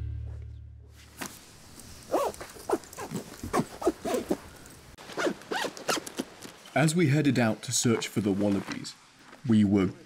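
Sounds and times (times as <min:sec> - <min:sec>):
zipper pulls: 0:02.1 - 0:04.4, 0:05.1 - 0:06.3.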